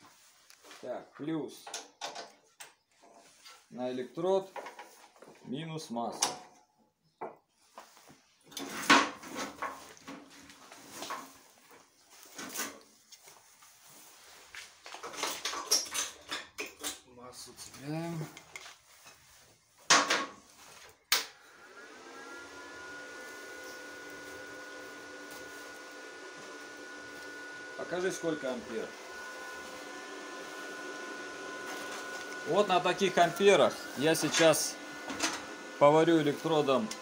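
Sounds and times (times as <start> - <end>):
welder humming with high whine: 21.2 - 37.0.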